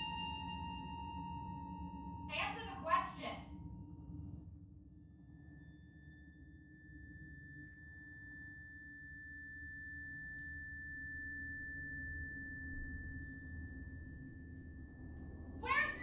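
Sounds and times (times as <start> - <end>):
high pure tone: 15.2 - 16.0.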